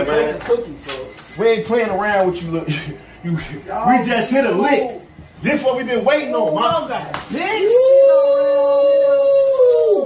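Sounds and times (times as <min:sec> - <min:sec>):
loud long howl: 0:07.5 - 0:10.0.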